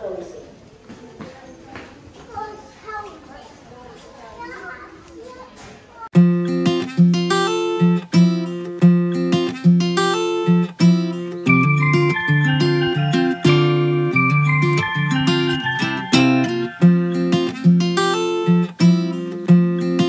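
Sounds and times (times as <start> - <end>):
acoustic guitar chords: 6.2 - 20.0
picked guitar melody: 6.2 - 20.0.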